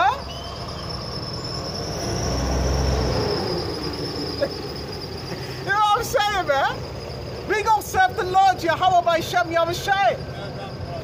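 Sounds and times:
passing vehicle rumble: 0.0s - 11.0s
steady high-pitched whine: 3.2s - 11.0s.

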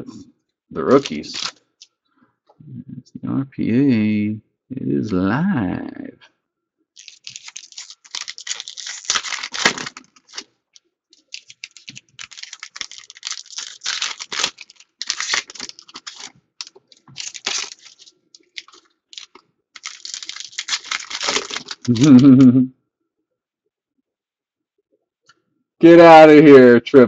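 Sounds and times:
foil wrappers tearing and crinkling: 0.9s - 1.6s, 7.0s - 10.5s, 11.2s - 22.2s.

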